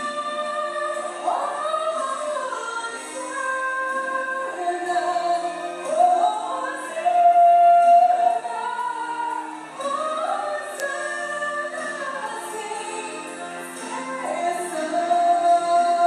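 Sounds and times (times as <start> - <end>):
woman singing a hymn: 0.0 - 16.0.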